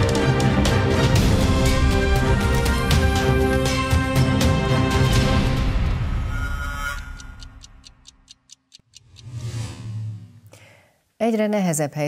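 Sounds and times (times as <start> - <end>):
theme music: 0.0 - 8.0
clock ticking: 5.8 - 9.5.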